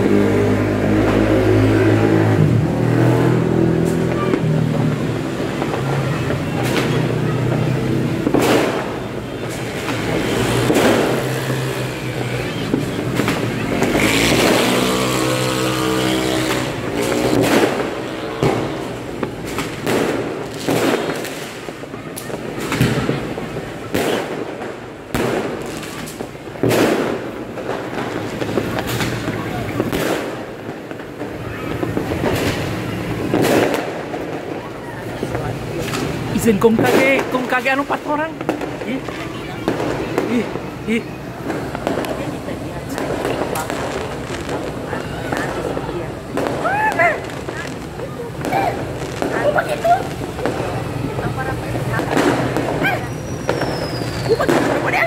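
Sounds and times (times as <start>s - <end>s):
fireworks banging: 0.0s - 55.0s
passing motorbikes and cars: 0.0s - 55.0s.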